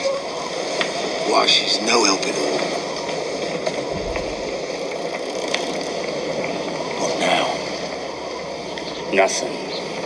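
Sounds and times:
sea and wind rushing: 0.0 - 10.0
dull low thump: 3.9 - 4.5.

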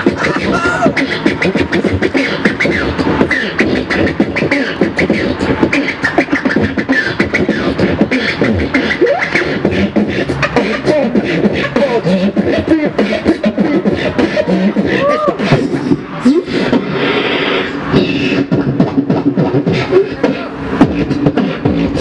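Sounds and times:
beatboxing: 0.0 - 22.0.

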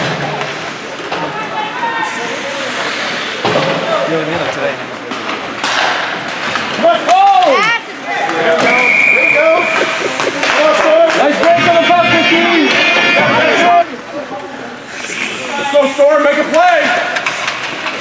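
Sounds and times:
spectators shouting: 7.1 - 14.0
referee whistle: 8.6 - 10.0.

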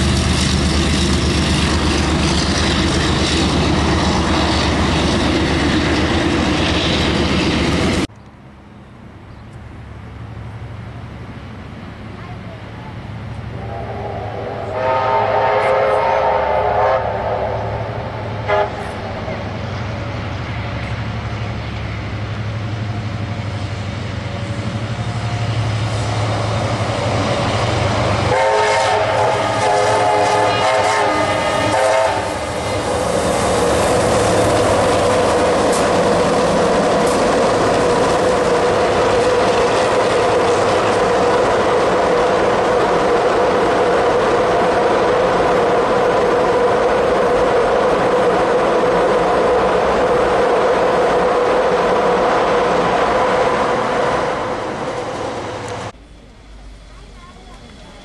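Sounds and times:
train rumbling past: 0.0 - 58.0
steam locomotive whistle: 13.6 - 19.0, 28.3 - 32.6.

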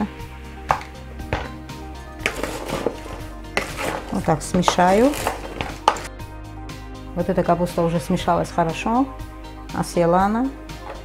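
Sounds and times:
spatula scraping plastic bowl: 2.2 - 6.1, 10.8 - 11.0.

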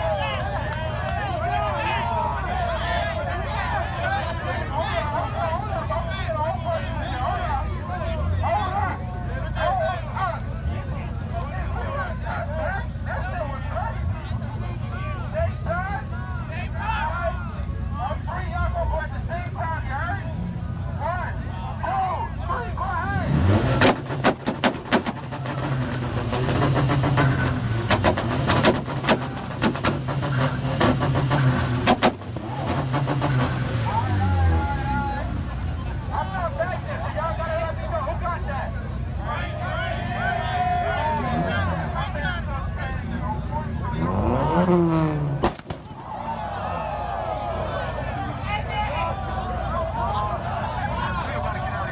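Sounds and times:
car engine idling: 0.0 - 51.9
crowd chatter: 0.0 - 51.9
engine revving with loud pops: 23.2 - 34.6, 44.0 - 46.0.

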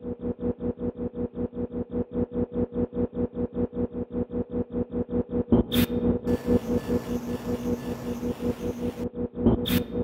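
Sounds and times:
electronic ambient music: 0.0 - 10.0
droning tones: 6.3 - 9.2.

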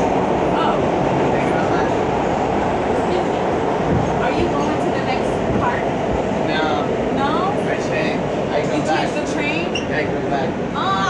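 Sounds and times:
subway wheels rumbling on track: 0.0 - 11.0.

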